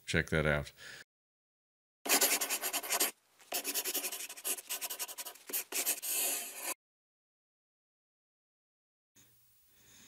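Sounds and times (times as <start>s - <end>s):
scratchy pen strokes: 2.1s - 6.8s.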